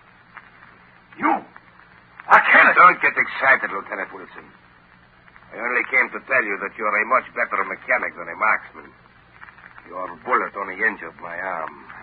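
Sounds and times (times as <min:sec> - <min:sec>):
old recording hum and hiss: 0:00.0 - 0:12.0.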